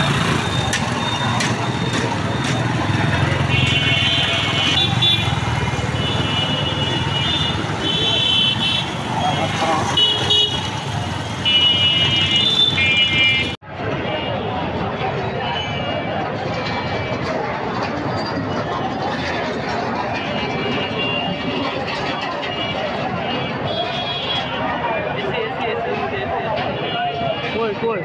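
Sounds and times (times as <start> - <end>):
vehicle engines running: 0.0 - 27.8.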